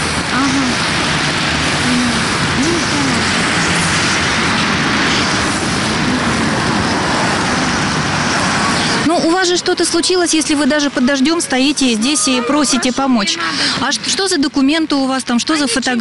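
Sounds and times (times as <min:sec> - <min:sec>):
rain hiss: 0:00.0 - 0:14.8
wet road traffic: 0:00.0 - 0:16.0.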